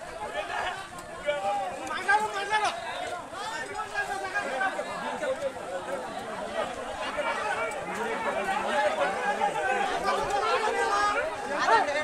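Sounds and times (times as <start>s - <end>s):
crowd of men arguing: 0.0s - 12.0s.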